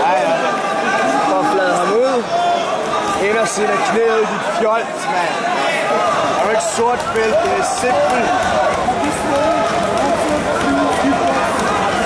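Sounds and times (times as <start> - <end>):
crowd voices calling out: 0.0 - 12.0.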